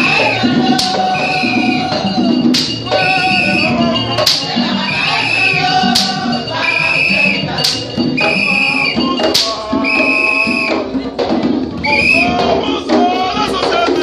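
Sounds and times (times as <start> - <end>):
group of voices chanting: 0.0 - 10.9
light percussion: 0.0 - 14.0
sharp percussion strikes: 0.0 - 14.0.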